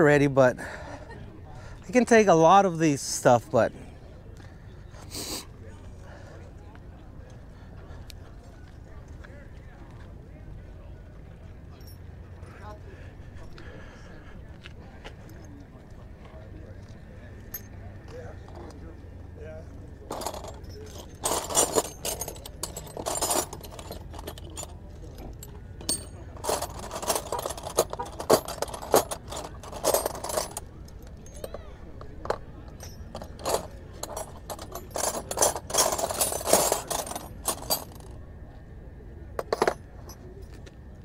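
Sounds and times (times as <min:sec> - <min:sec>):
metal wrenches clinking: 0:20.0 - 0:38.1, 0:39.4 - 0:40.6.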